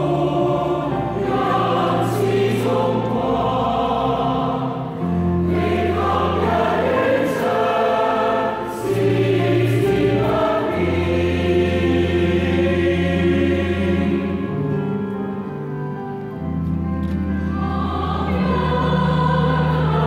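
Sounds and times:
choir singing a hymn: 0.0s - 15.6s, 17.1s - 20.0s.

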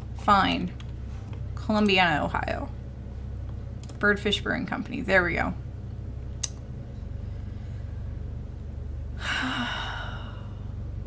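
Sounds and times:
steady low hum: 0.0s - 11.0s
person sighing: 9.2s - 10.6s.

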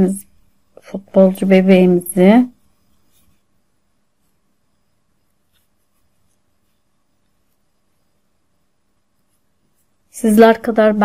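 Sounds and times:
steady low hum: 0.0s - 11.0s
yarn rustling through fabric: 0.8s - 10.7s.

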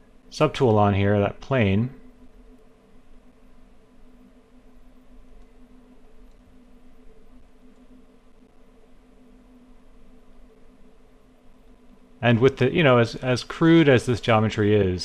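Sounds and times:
low hum: 0.0s - 15.0s.

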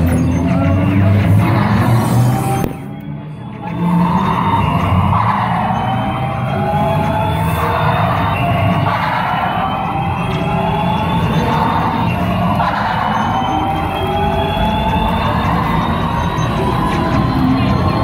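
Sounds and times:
music with rising electronic tones: 0.0s - 18.0s.

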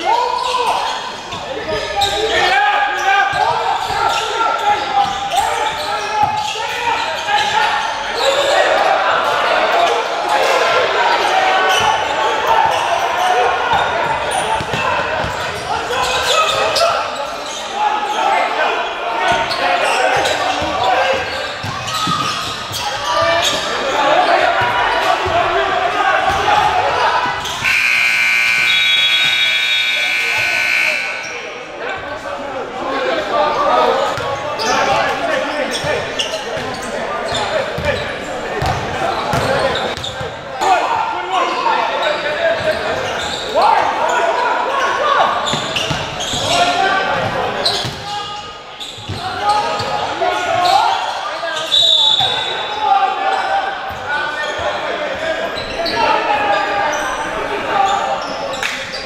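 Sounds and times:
spectators talking and shouting: 0.0s - 59.0s
scoreboard buzzer: 27.6s - 31.4s.

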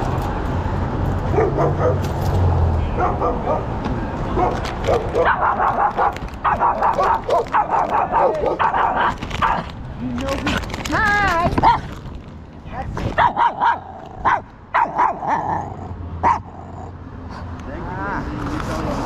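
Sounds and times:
small dog barking: 4.4s - 9.6s, 13.2s - 15.4s, 16.2s - 16.5s.

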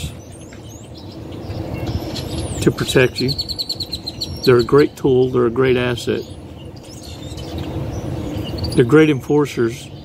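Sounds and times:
small birds chirping: 0.0s - 10.0s
steady background noise: 0.0s - 10.0s.

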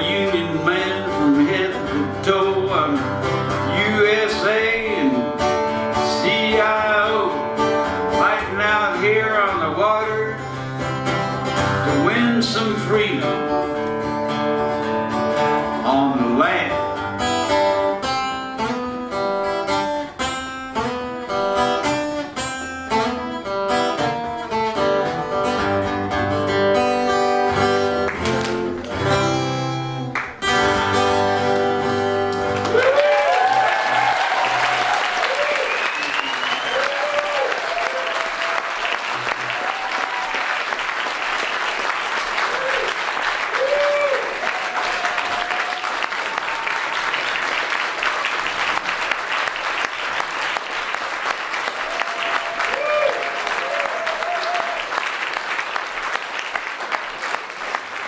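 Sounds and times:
acoustic guitars strumming: 0.0s - 32.7s.

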